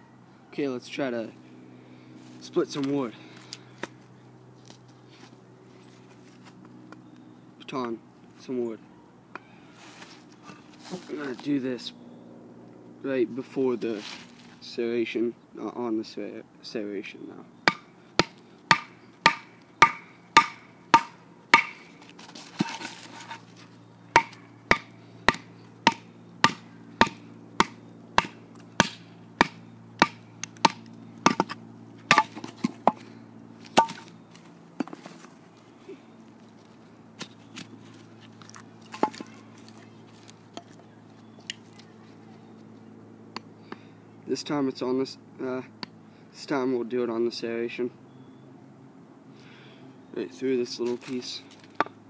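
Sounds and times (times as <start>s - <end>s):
wooden baton striking knife: 17.7s - 21.9s, 24.2s - 33.0s.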